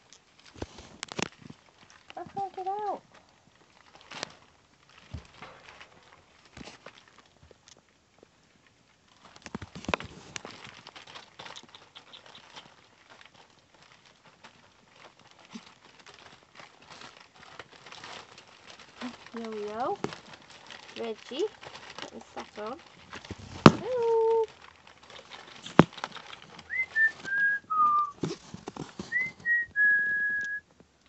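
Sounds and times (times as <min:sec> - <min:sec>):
pattering paws: 0:00.0 - 0:31.0
rustling paper: 0:00.0 - 0:31.0.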